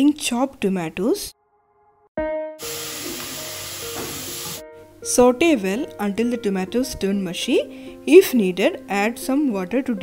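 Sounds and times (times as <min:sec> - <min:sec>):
soft background music: 0:02.2 - 0:10.0
tomatoes sizzling in oil: 0:02.6 - 0:04.6.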